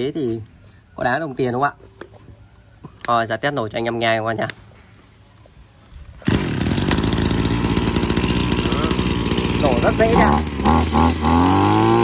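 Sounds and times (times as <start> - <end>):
brush cutter engine starting: 6.2 - 12.0.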